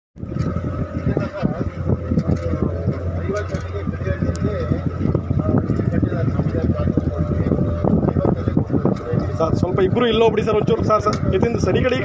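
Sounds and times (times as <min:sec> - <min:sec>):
motorboat engine humming: 0:00.2 - 0:12.0
people talking: 0:00.9 - 0:12.0.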